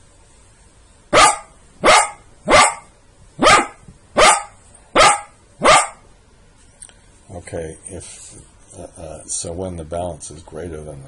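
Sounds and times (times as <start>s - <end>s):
dog barking: 1.1s - 6.1s.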